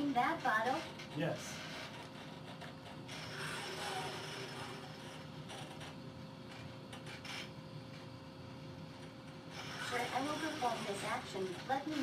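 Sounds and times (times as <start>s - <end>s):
robot arm whirring: 3.1s - 5.0s, 9.5s - 12.0s.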